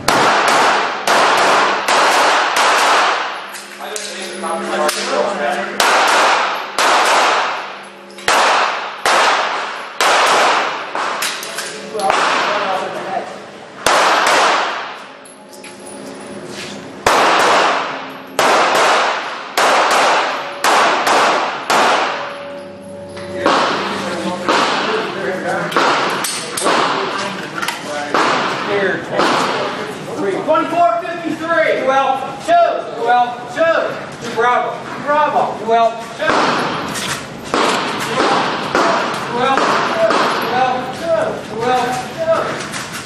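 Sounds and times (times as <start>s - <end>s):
pistol shots echoing indoors: 0.0s - 4.2s, 4.8s - 13.0s, 13.8s - 15.6s, 17.0s - 27.3s, 28.1s - 29.9s, 36.2s - 41.0s.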